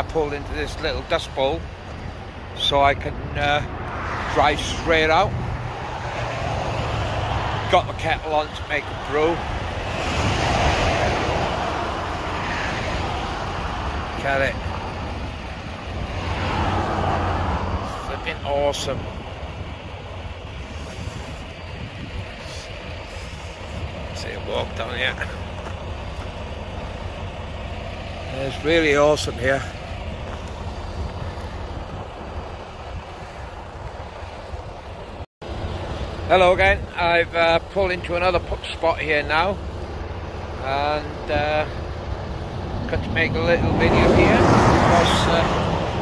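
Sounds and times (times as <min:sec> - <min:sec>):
highway traffic passing: 0:00.0 - 0:46.0
wind buffeting microphone: 0:04.6 - 0:27.4, 0:29.7 - 0:35.2, 0:41.8 - 0:46.0.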